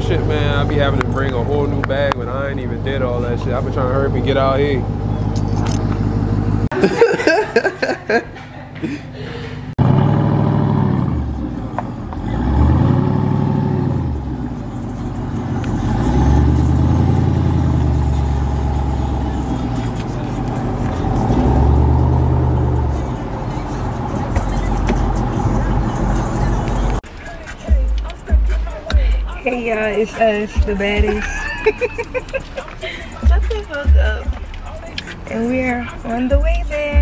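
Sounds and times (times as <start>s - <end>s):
engine revving: 0.0s - 6.7s, 9.8s - 27.0s.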